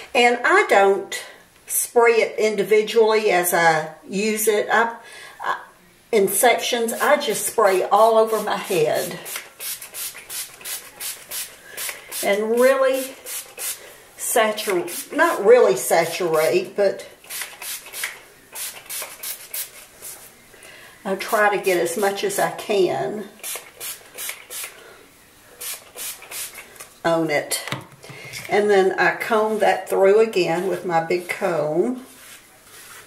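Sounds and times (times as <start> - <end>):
spray bottle hissing: 9.2 - 12.3, 17.3 - 19.8, 23.4 - 24.8, 25.6 - 26.6.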